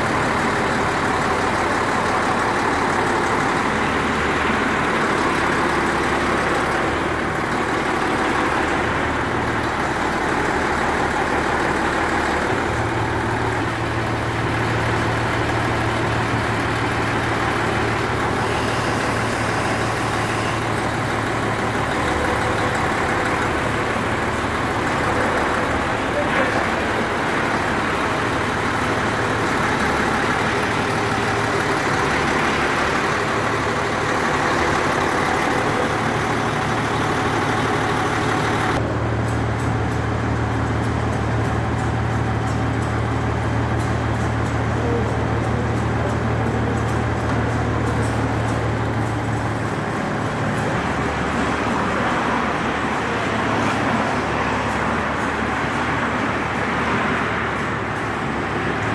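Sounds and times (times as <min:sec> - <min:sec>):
diesel engine idling: 0:00.0 - 0:58.9.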